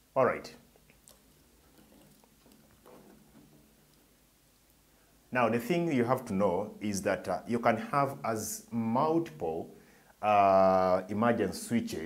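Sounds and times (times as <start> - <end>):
soft handling noise: 0.7 - 4.9.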